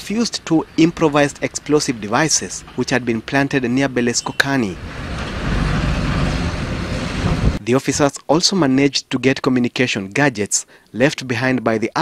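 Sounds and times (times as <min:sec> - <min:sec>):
armoured car driving past: 0:04.3 - 0:07.6.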